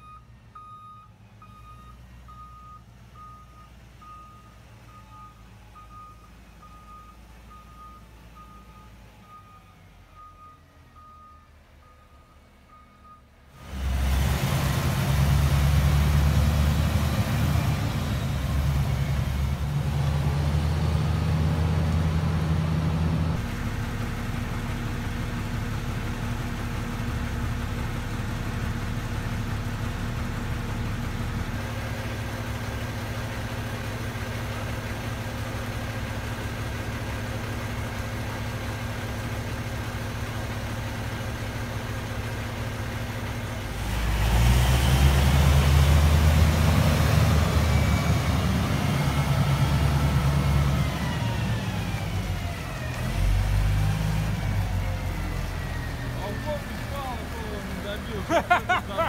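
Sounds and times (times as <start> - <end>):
dump truck diesel engine revving: 0.0 - 59.0.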